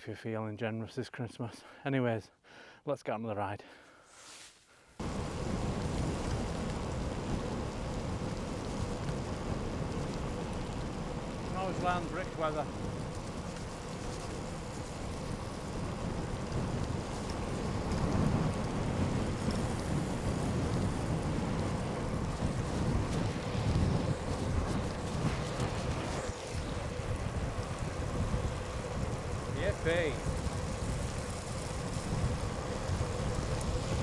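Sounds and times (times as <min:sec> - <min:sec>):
tyre noise on wet tarmac: 0:05.0 - 0:34.0
wind rushing over microphone: 0:05.0 - 0:34.0.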